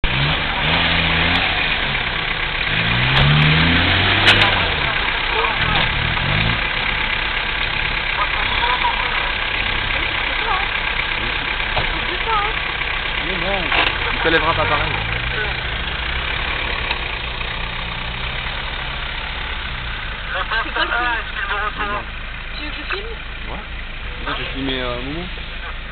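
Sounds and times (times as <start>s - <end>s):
engine revving: 0.0s - 25.9s.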